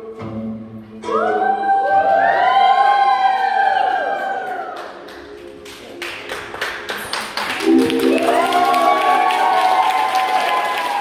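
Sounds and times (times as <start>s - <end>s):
audience applause: 3.4s - 11.0s
voices cheering: 7.6s - 11.0s.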